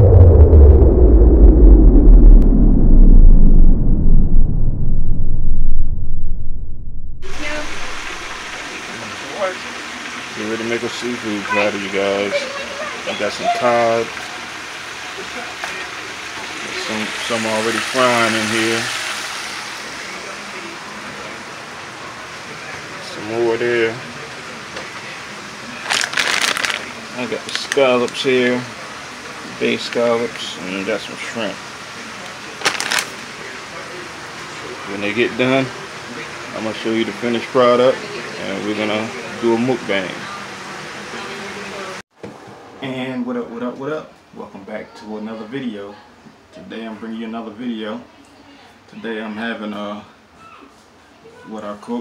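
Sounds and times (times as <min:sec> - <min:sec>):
fish sizzling in hot oil: 0:07.3 - 0:20.8
fish frying in deep fryer: 0:07.3 - 0:41.2.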